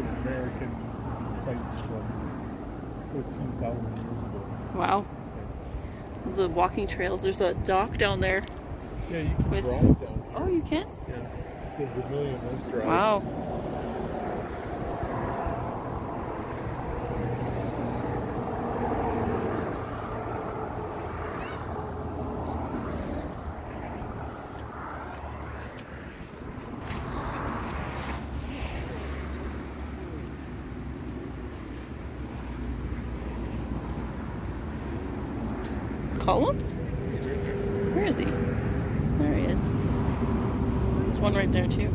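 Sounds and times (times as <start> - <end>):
road traffic rumble: 0.0 - 41.9
engine drone: 10.8 - 41.9.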